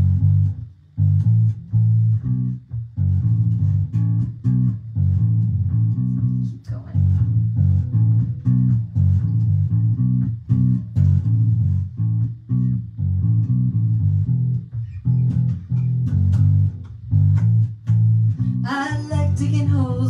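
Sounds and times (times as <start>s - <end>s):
electric bass guitar line: 0.0s - 20.0s
woman singing: 18.5s - 20.0s.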